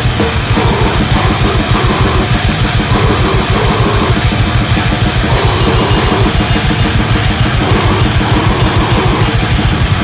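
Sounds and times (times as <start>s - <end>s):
distorted grindcore band: 0.0s - 10.0s
fast kick drum hits: 0.0s - 10.0s.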